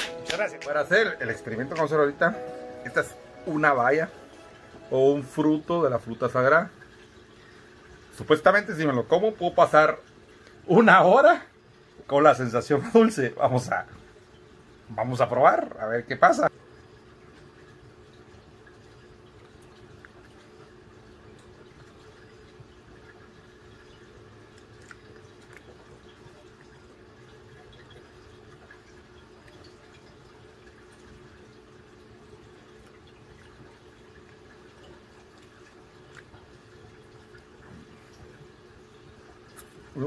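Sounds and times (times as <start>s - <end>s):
aquarium filter hum: 0.0s - 40.0s
water trickling: 0.1s - 40.0s
light water drips: 0.3s - 40.0s.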